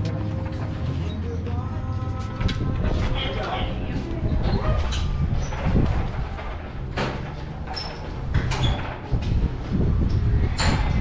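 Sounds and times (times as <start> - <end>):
steady low rumble: 0.0 - 11.0
people talking: 2.9 - 4.8.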